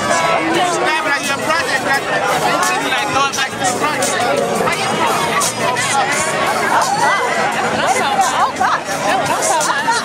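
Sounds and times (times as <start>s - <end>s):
crowd voices talking: 0.0s - 10.0s
music playing: 0.0s - 10.0s.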